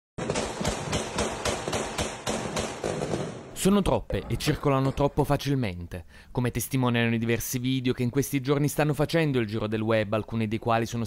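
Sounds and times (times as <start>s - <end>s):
firecrackers and gunfire bangs: 0.2s - 3.6s.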